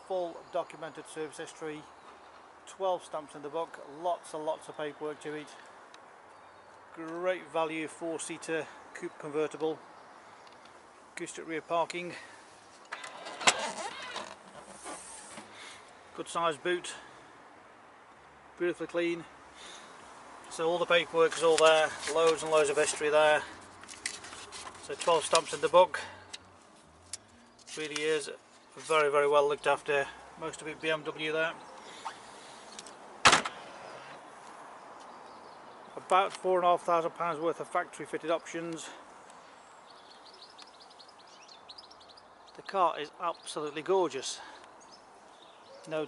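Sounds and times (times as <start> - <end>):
soft rustling: 12.5 - 16.0, 20.9 - 25.7
mechanical noise of lid lifting: 12.9 - 15.5
car boot lid shutting thud: 33.2 - 33.6.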